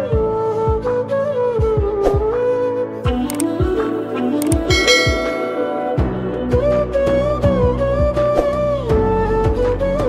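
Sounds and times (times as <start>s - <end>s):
instrumental background music: 0.0s - 10.0s
clicks: 3.3s - 3.5s, 4.4s - 4.7s
bright bell chime: 4.7s - 6.6s.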